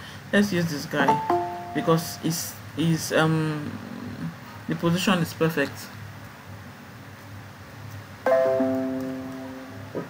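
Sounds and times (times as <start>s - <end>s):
low room hum: 0.0s - 10.0s
electronic notification chime: 1.1s - 2.0s.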